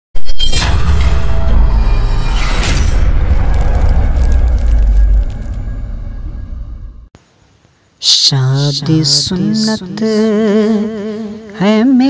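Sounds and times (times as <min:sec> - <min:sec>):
whoosh: 0:00.4 - 0:07.1
deep booming rumble: 0:00.8 - 0:07.1.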